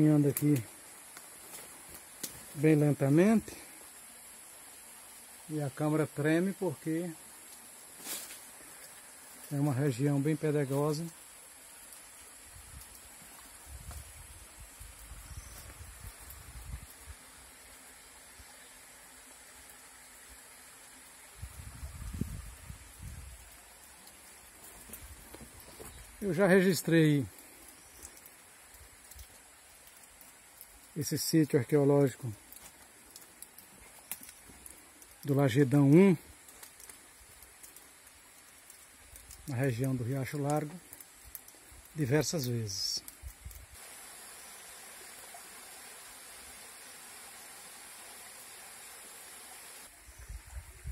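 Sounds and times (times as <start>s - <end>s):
faint high hiss: 0.0s - 50.9s
footsteps on rocky ground: 24.6s - 26.0s
faint clicks: 27.3s - 31.0s, 32.4s - 35.4s, 36.3s - 43.7s.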